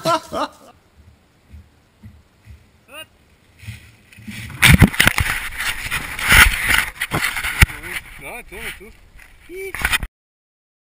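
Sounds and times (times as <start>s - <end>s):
camera handling noise: 4.2s - 7.7s.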